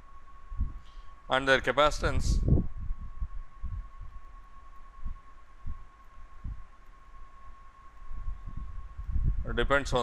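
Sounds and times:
thin electrical whine: 0.0 - 10.0.

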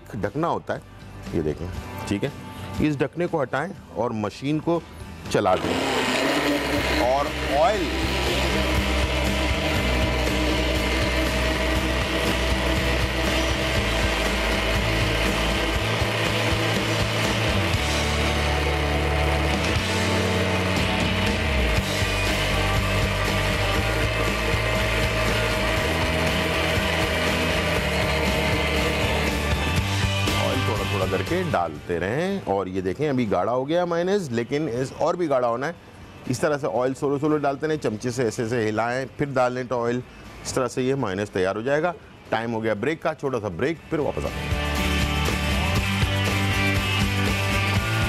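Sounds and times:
blender motor running: 5.4 - 31.5.

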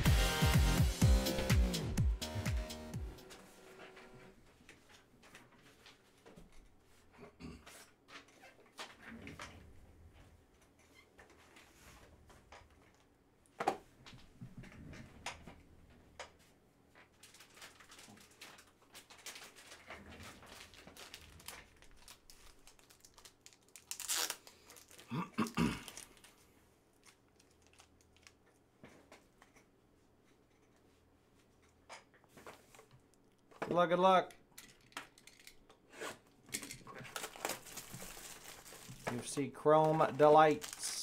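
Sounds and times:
wrapping crinkling and tearing: 17.0 - 28.6, 36.9 - 41.0.

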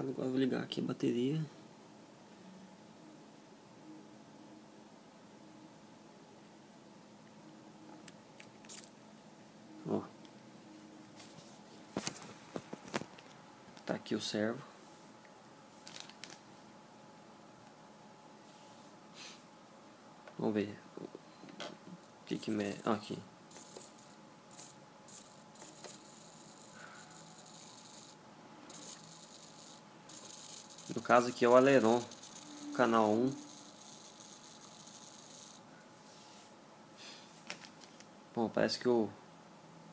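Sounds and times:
sharp scratchy click: 23.5 - 26.8
servo buzzing: 23.5 - 35.6.

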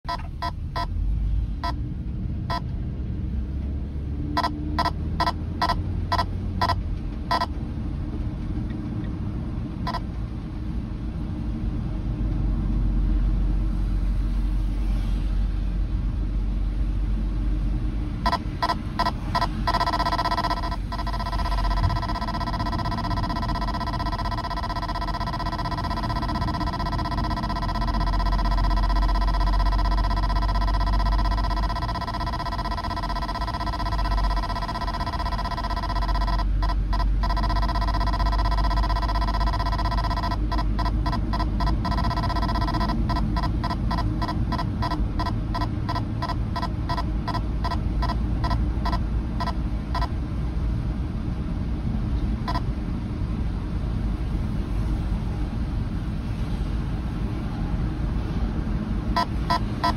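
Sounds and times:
radar detector alert beeping: 0.0 - 1.0, 4.4 - 7.5, 18.2 - 50.1, 59.2 - 59.9
car rumbling on wet road: 0.2 - 19.9, 43.0 - 59.9.

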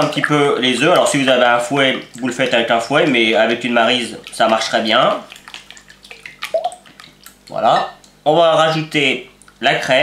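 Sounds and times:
eggs sloshing in a bowl: 0.0 - 8.8.

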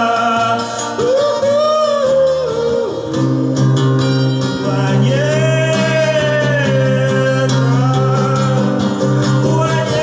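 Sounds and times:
twelve-string acoustic guitar: 0.0 - 10.0.

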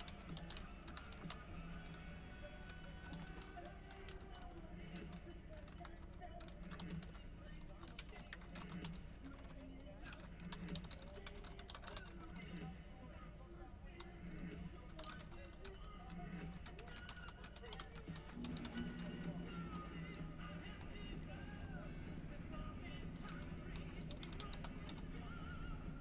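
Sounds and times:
faint background music: 0.0 - 26.0
keyboard typing: 0.0 - 26.0
voices: 0.0 - 26.0.

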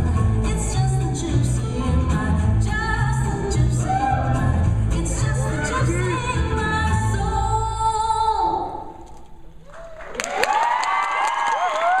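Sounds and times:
audience cheering and whooping: 3.7 - 4.6, 9.6 - 12.0
audience clapping: 9.6 - 12.0.

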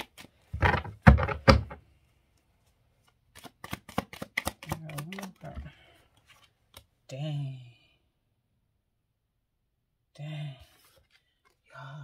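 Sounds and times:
cards being shuffled: 0.0 - 1.7, 3.0 - 6.9
sharp card clicks: 3.4 - 5.4.

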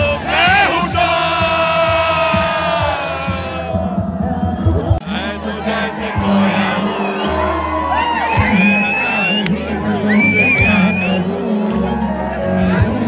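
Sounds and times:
crowd cheering and screaming: 0.0 - 12.8
live band music over pa: 0.0 - 13.0.

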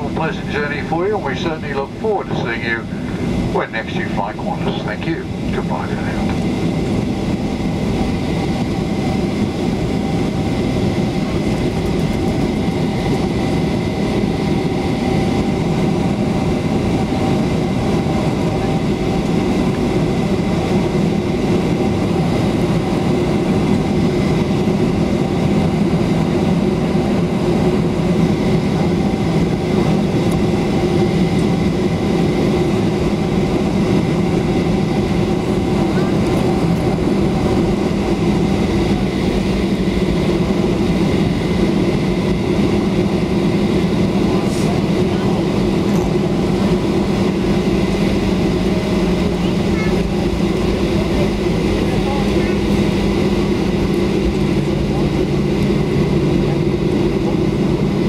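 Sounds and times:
jet engines humming: 0.0 - 58.0
wheels rumbling on runway: 0.0 - 58.0.

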